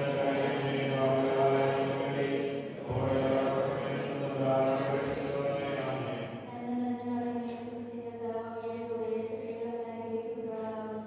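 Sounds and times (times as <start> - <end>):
man chanting a prayer: 0.0 - 6.2.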